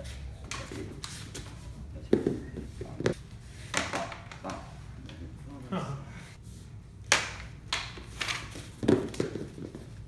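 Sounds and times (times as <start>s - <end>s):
practice swords clacking: 7.0s - 10.0s.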